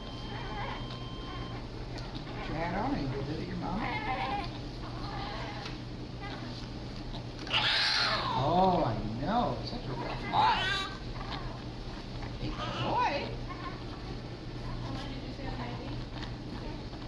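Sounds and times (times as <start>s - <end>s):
newborn baby crying: 7.4s - 8.4s, 10.0s - 11.6s, 12.4s - 13.8s.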